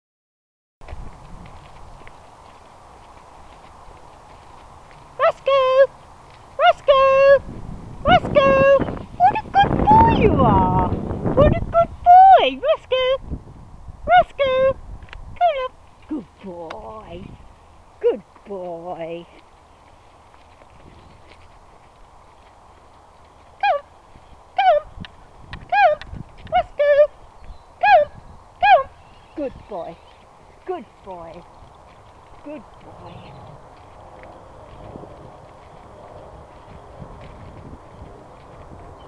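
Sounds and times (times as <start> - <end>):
footsteps on gravel: 0.8 - 7.1, 15.9 - 26.6, 29.4 - 39.0
woman calling a dog: 5.1 - 6.0, 6.6 - 13.2, 14.0 - 14.8, 15.4 - 17.3, 18.0 - 19.4, 23.6 - 23.9, 24.6 - 24.9, 25.6 - 27.2, 27.8 - 31.5, 32.4 - 33.4
person calling sing-song: 25.6 - 27.1, 27.8 - 29.9.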